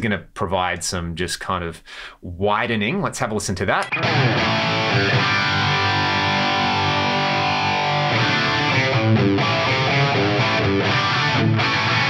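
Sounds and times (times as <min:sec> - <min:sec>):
distorted electric guitar: 0:03.8 - 0:12.0.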